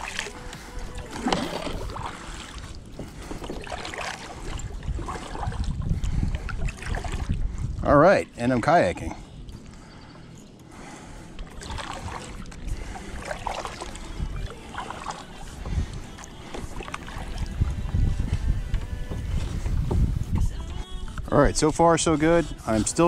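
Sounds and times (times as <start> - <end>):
paddle splashing in water: 0.0 - 7.4, 10.9 - 20.6
water lapping at hull: 0.0 - 23.0.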